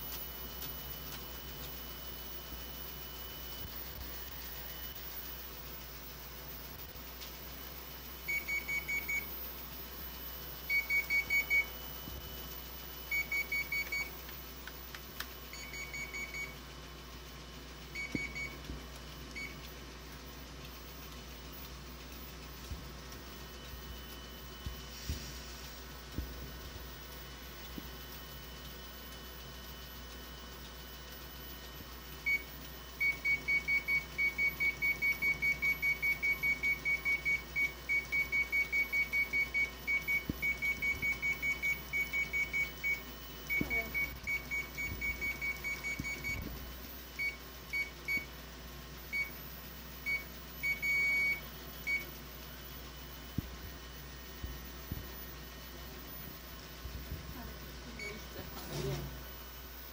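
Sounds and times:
copier control panel beeping: 0.0 - 56.7, 57.7 - 59.0.

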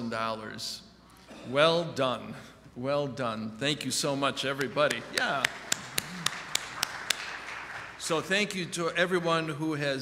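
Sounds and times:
loud sharp claps: 4.4 - 9.5
congregation applauding: 4.4 - 9.8.

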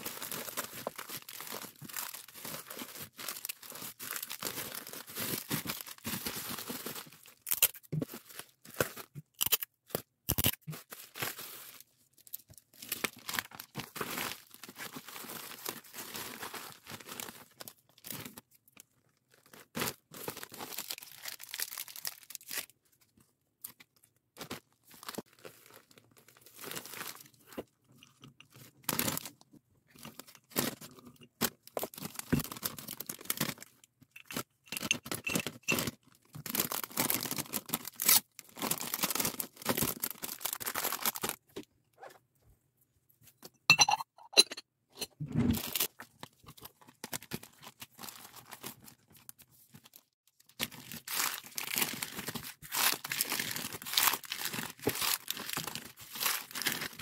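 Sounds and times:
plastic packaging crinkling: 0.0 - 18.4, 19.4 - 22.7, 30.0 - 41.5, 45.6 - 57.0.

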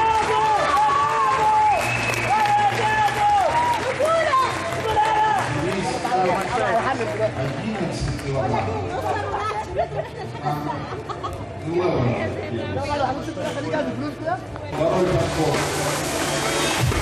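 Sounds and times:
spectators shouting and cheering: 0.0 - 7.0, 14.9 - 17.0.

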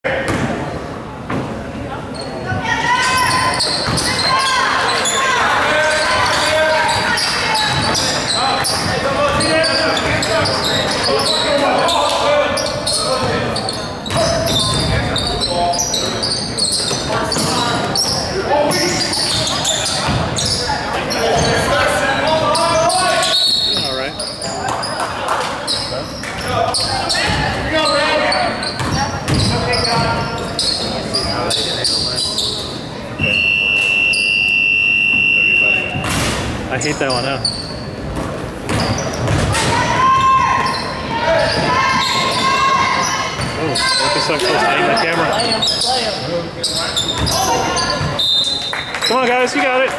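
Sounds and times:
players and spectators shouting: 2.6 - 15.9, 39.5 - 46.3.

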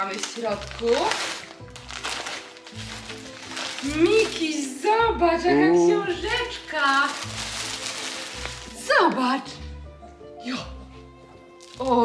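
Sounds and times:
plastic packaging crinkling: 0.0 - 4.8, 5.9 - 9.4, 11.6 - 12.0
background music with held notes: 0.0 - 12.0.

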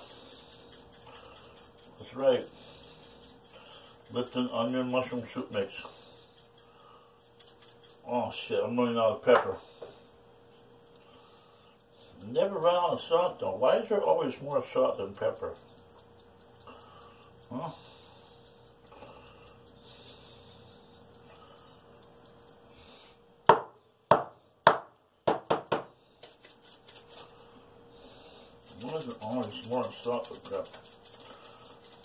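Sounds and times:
sharp knocks: 23.5 - 25.9.

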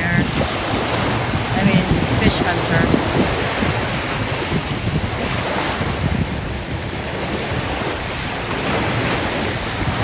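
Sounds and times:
sea waves washing: 0.0 - 10.0
wind buffeting microphone: 0.0 - 10.0.

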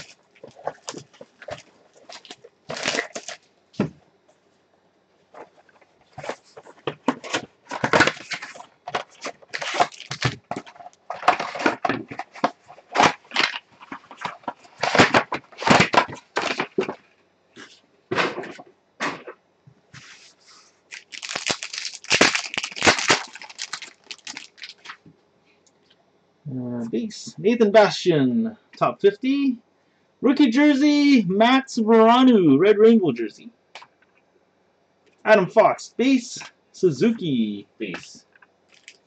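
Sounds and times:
card packs crinkling and tearing: 0.0 - 3.4, 5.4 - 17.0, 20.9 - 25.0, 38.7 - 39.0.

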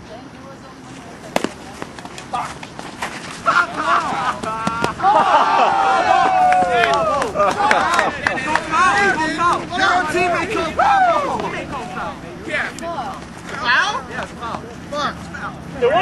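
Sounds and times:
bat cracking ball: 1.3 - 5.0
players shouting: 3.3 - 16.0.

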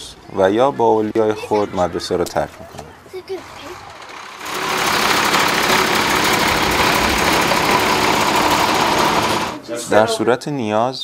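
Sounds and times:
bus engine running: 3.4 - 9.6.

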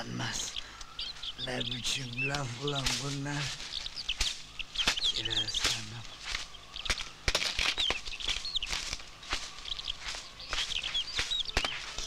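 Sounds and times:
small birds chirping: 0.0 - 12.0
knocks and scuffs on dirt: 1.1 - 12.0.

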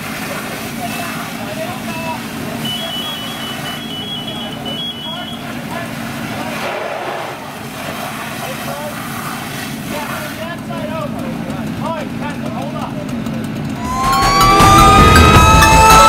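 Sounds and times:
fire engine motor running: 0.0 - 16.0
indistinct voices: 13.8 - 16.0.

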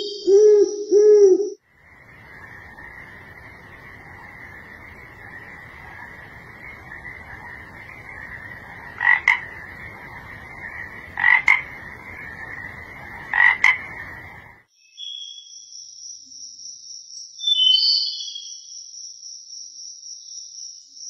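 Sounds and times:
frog double croaks: 1.8 - 14.6.

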